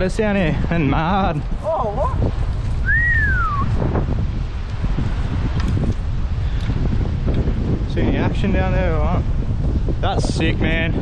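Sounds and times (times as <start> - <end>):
wind buffeting microphone: 0.0 - 11.0
rising and falling whistle: 2.8 - 3.8.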